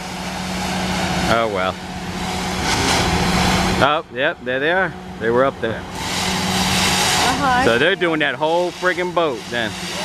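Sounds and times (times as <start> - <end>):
pressure washer hum and hiss: 0.0 - 10.0.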